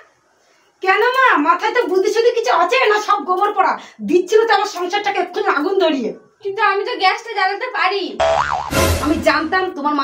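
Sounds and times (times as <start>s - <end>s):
comic boing sound effect: 8.2s - 9.1s
woman speaking: 9.0s - 10.0s.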